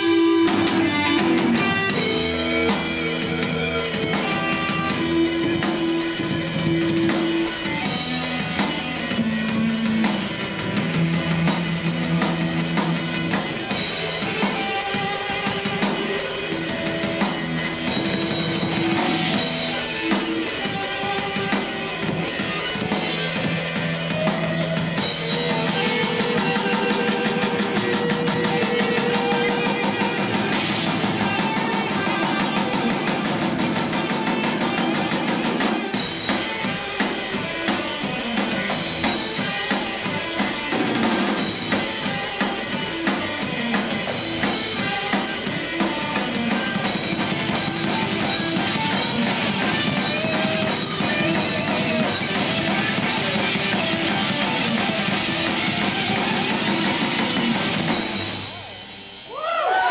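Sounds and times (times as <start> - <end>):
metal band playing live: 0.0 - 59.9.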